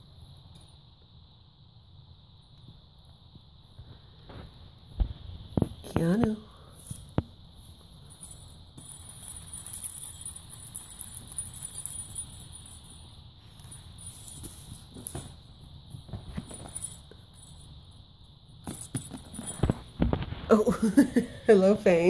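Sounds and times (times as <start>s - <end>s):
high rustling hiss: 0.0s - 21.0s
kittens scuffling: 3.8s - 18.0s, 18.6s - 20.6s.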